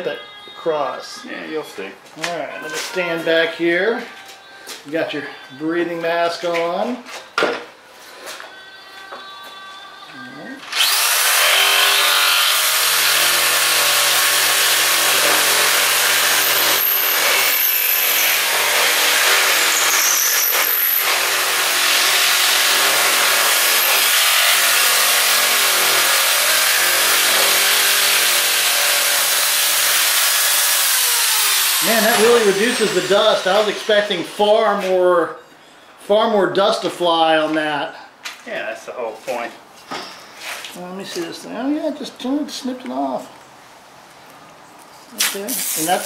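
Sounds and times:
electric shears cutting shingle: 0:10.6 - 0:34.4, 0:45.2 - 0:46.0.

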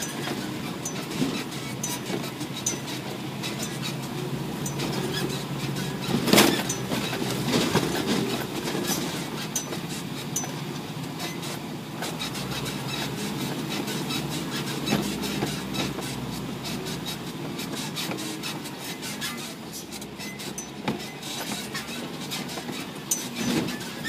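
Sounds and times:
diesel truck engine running: 0:00.0 - 0:24.0
truck body rattling and knocking: 0:00.0 - 0:24.0.

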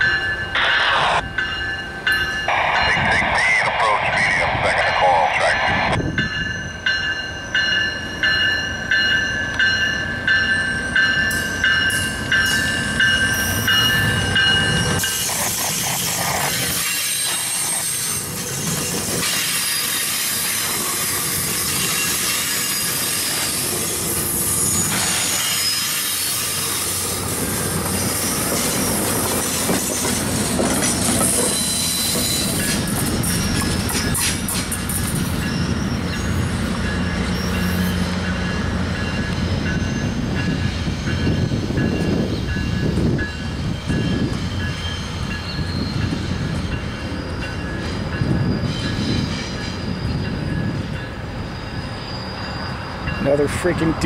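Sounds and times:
diesel locomotive rumble: 0:00.0 - 0:07.0
train wheels squealing and clattering: 0:10.8 - 0:53.5.

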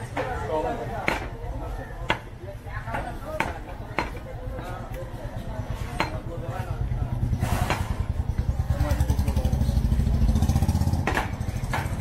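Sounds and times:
cleaver chopping meat on wood: 0:01.0 - 0:01.4, 0:02.0 - 0:04.2, 0:10.8 - 0:12.0
engine throbbing: 0:06.9 - 0:12.0.

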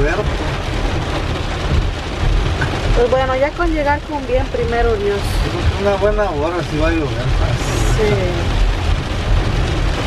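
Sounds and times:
heavy rain on a car roof: 0:00.0 - 0:10.0
steady low rumble: 0:00.0 - 0:10.0.

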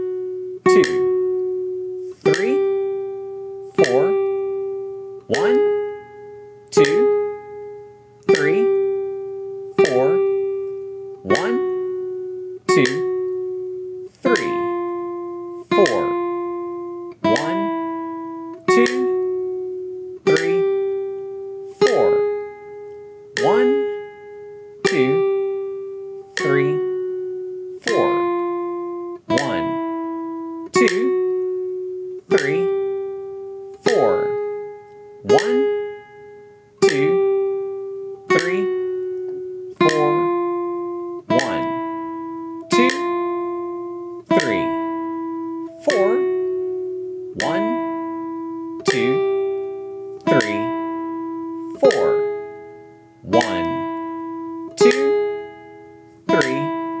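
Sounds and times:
nylon-string guitar plucked notes: 0:00.0 - 0:57.0.

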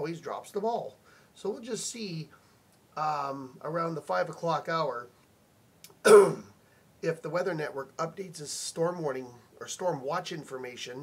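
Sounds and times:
man clearing throat: 0:06.0 - 0:06.5.

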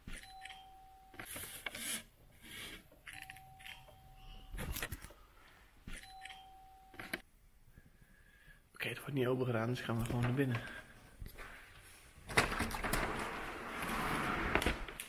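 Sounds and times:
doorbell ringing: 0:06.0 - 0:07.0.

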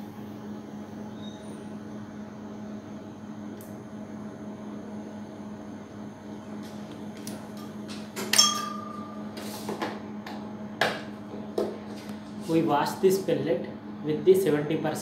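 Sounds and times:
low hum of lab equipment: 0:00.0 - 0:15.0
sharp clink with ringing tone: 0:08.4 - 0:09.2.

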